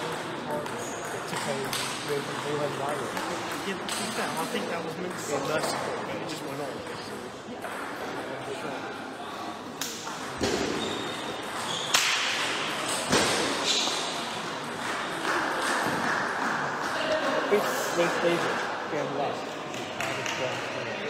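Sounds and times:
murmur of voices echoing: 0.0 - 21.0.

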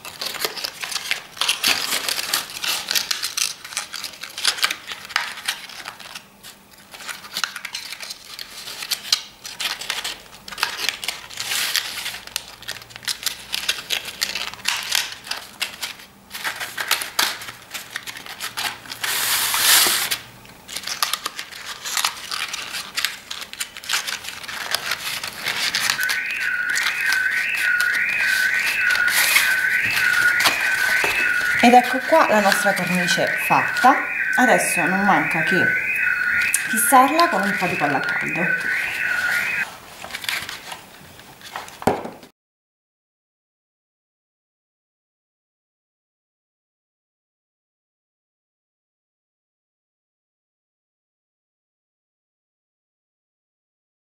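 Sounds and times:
paper rustling and crinkling: 0.0 - 33.7, 37.1 - 42.1
high chirp: 25.9 - 39.6.

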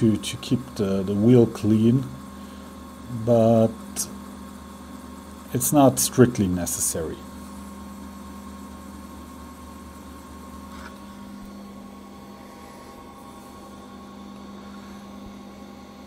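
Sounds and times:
gear motor humming with whine: 0.0 - 16.0.

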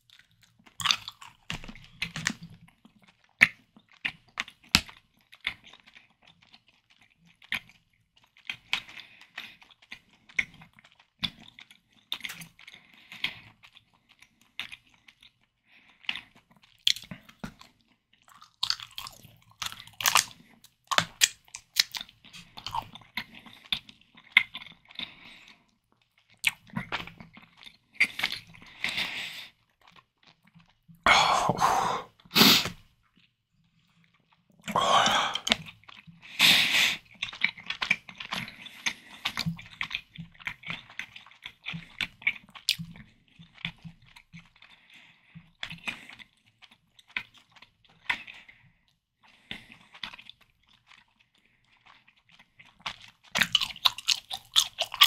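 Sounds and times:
chewing candy: 0.0 - 55.0.

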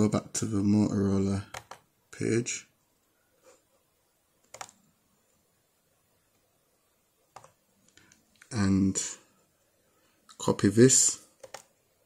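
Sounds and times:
computer mouse clicks: 1.5 - 1.9, 4.4 - 4.8, 7.3 - 8.5, 11.4 - 11.8.

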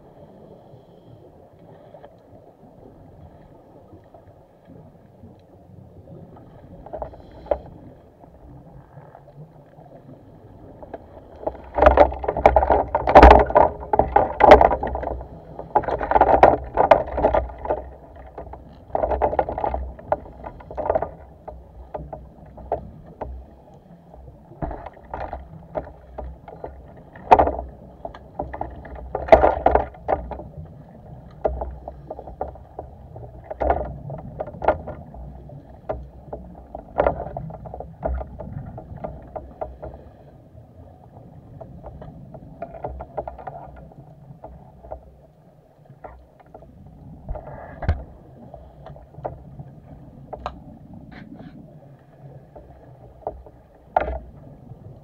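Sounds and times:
low underwater rumble: 0.0 - 55.0
underwater bubbling and crackling: 0.0 - 55.0
sharp clicks and knocks: 10.9 - 23.4, 24.6 - 30.6, 53.2 - 54.3.

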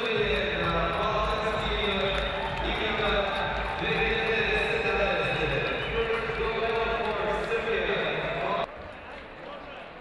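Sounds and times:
echoing speech: 0.0 - 10.0
loud background noise: 0.0 - 10.0.

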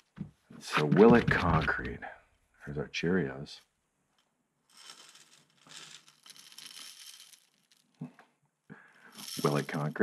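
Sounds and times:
cereal rustling onto concrete: 4.7 - 7.9.

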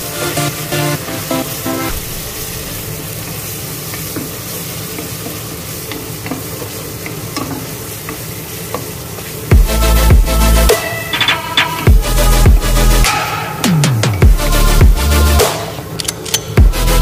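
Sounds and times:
electronic music: 0.0 - 3.1, 9.5 - 16.0, 16.6 - 17.0
garlic sizzling in oil: 0.0 - 11.8.

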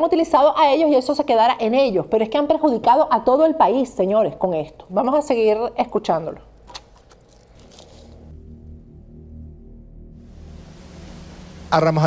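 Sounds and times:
low steady hum: 1.9 - 12.0
metal bracelets jingling: 5.8 - 8.3.

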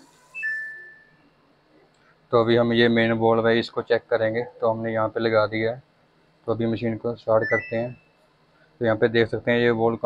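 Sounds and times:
washing machine beep: 0.2 - 1.3, 7.4 - 8.2.

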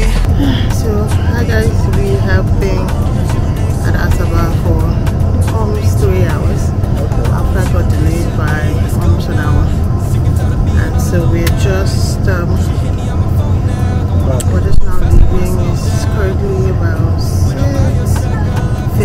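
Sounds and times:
airliner cabin drone: 0.0 - 19.0
woman talking: 0.3 - 3.0, 3.8 - 6.7, 7.3 - 9.7, 10.8 - 12.7, 14.4 - 19.0.

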